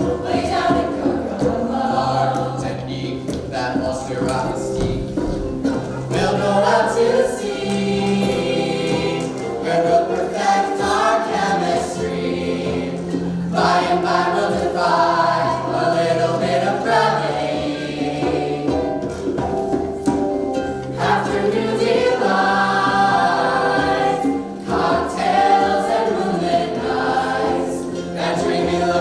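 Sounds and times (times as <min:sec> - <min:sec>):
group singing with live band: 0:00.0 - 0:03.2, 0:05.6 - 0:19.4, 0:20.9 - 0:29.0.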